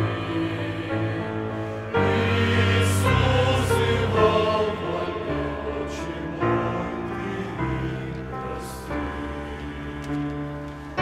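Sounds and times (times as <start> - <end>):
mixed choir singing a hymn: 0.0 - 11.0.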